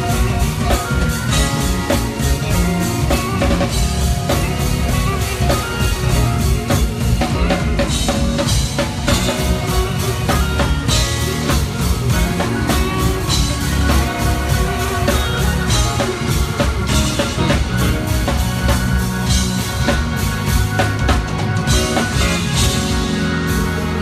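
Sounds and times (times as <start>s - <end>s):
busy drumming: 0.0s - 24.0s
lead electric guitar: 0.0s - 24.0s
live band playing: 0.0s - 24.0s.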